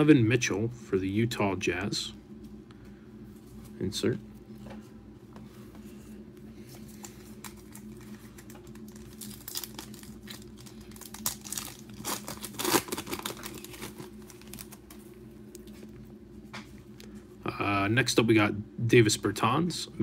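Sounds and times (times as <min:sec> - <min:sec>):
steady low hum: 0:00.0 - 0:20.0
wrapper tearing and crinkling: 0:07.0 - 0:15.0.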